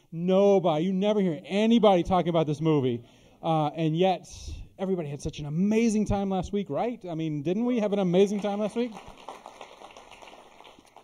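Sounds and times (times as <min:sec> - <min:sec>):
scattered clapping: 0:08.4 - 0:11.0.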